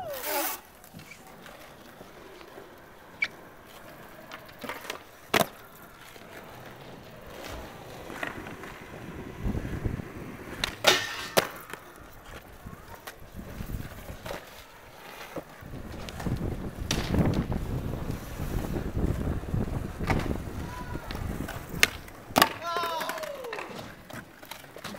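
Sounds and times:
skateboard wheels rolling on concrete: 0.0 - 24.9
skateboard deck clacking down: 0.1 - 24.9.

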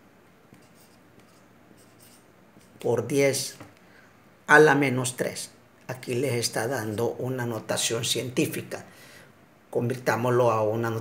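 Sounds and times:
marker writing on whiteboard: 0.5 - 3.0.

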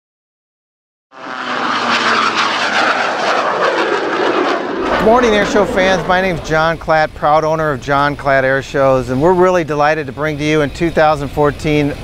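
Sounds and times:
biplane engine in flight: 1.1 - 12.0.

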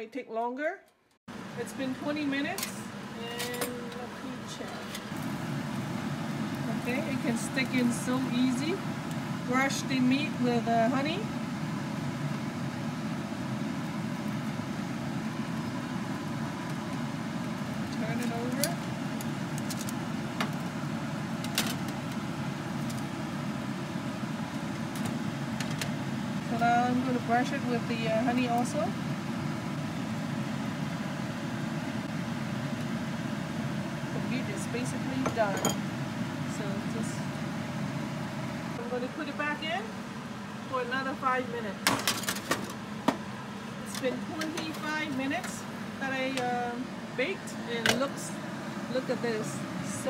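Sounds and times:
low background hum: 0.0 - 50.0.

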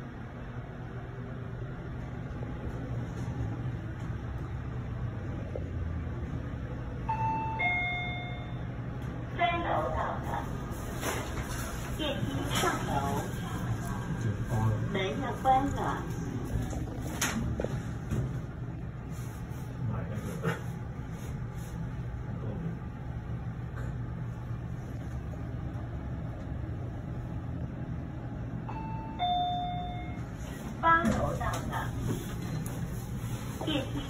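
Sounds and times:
elevator hum: 0.0 - 34.0
two-tone arrival chime: 7.1 - 8.6.

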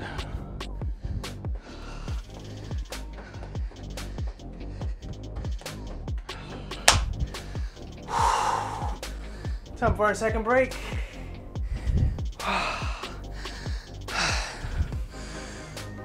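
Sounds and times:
man breathing hard: 0.0 - 9.8, 10.7 - 16.0
workout music with kick drum: 0.0 - 16.0.

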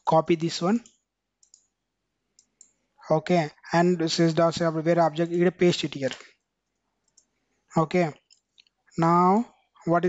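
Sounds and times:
faint computer mouse clicks: 0.8 - 1.7, 2.4 - 2.8.

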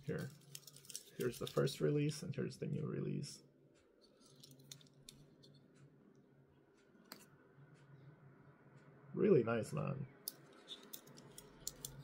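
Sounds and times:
toy cars clicking: 0.1 - 1.8, 10.5 - 12.0.

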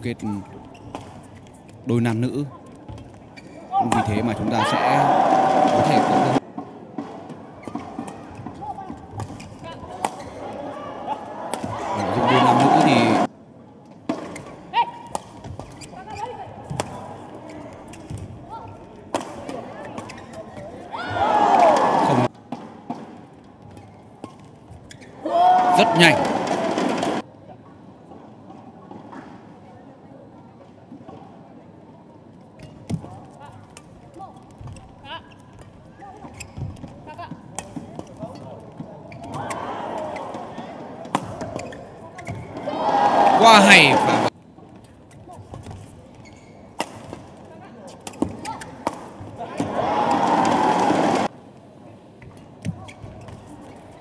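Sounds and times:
shoe squeaks on court floor: 0.4 - 1.6, 3.0 - 3.8, 7.6 - 10.4, 15.5 - 16.4, 19.8 - 20.8, 23.7 - 25.2, 34.3 - 37.0, 41.3 - 42.6, 44.8 - 47.1, 52.3 - 54.0
bursts of voices: 10.6 - 13.3, 42.6 - 44.3.

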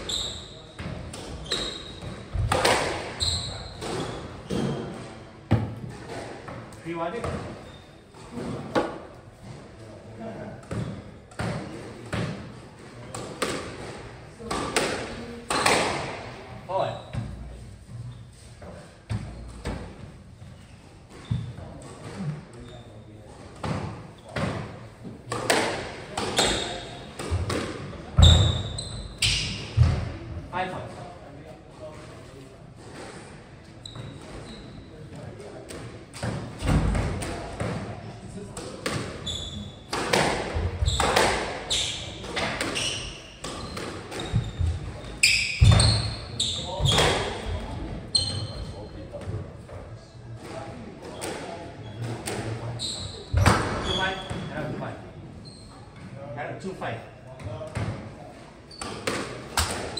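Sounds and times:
shoes squeaking on wooden floor: 0.0 - 6.2, 7.1 - 8.7, 20.4 - 23.0, 28.2 - 29.9, 33.7 - 34.9, 39.2 - 49.0, 51.8 - 56.2
squash ball impacts: 0.8 - 7.6, 10.5 - 16.3, 23.5 - 30.2, 38.5 - 47.9, 53.3 - 54.6, 58.8 - 59.9.

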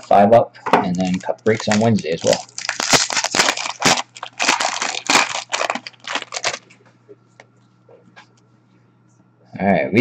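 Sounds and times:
packaging ripping and crinkling: 0.9 - 6.7.

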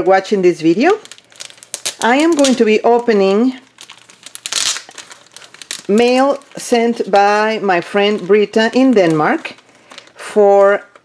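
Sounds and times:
plastic sleeve crinkling: 0.5 - 11.0.

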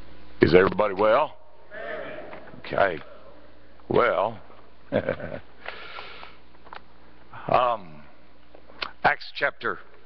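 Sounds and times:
sniff: 5.6 - 6.4.

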